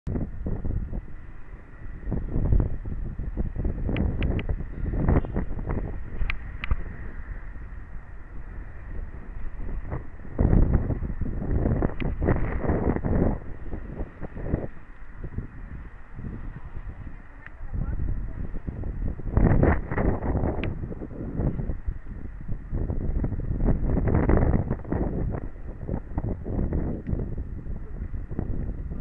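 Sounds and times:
wind buffeting microphone: 0:00.1 - 0:29.0.

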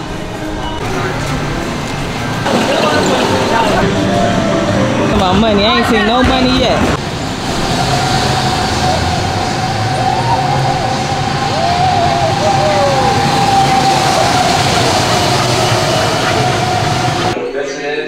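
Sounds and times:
thrill ride whine: 0:00.0 - 0:17.4
people crying out: 0:07.7 - 0:17.4.

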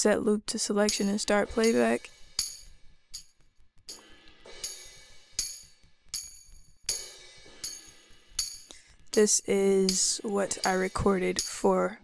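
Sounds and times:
tambourine and cymbal hits: 0:01.0 - 0:03.3, 0:03.9 - 0:11.8.

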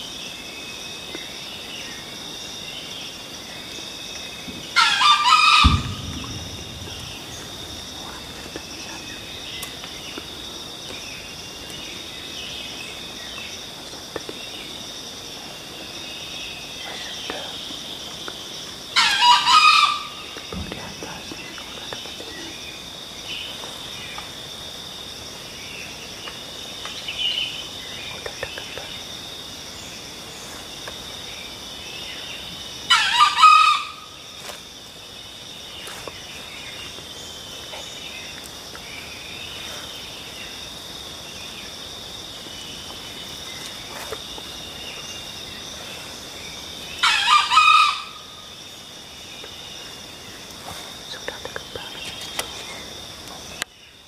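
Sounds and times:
insects droning: 0:00.0 - 0:54.0
rooster crowing: 0:04.8 - 0:06.0, 0:19.0 - 0:20.2, 0:32.9 - 0:34.1, 0:47.0 - 0:48.4.

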